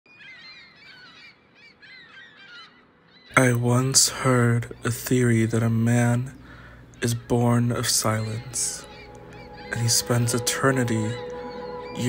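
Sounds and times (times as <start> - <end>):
flock of birds calling: 0.1 - 12.0.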